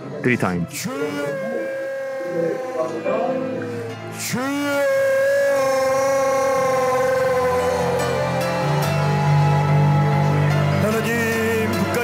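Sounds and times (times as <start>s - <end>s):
person shouting a long cry: 0.8s - 3.1s, 4.3s - 10.2s.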